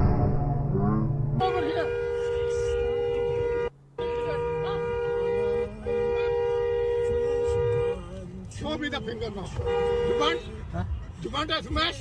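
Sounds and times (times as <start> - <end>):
car horn two-tone blast: 1.4 - 8.3, 9.4 - 10.7.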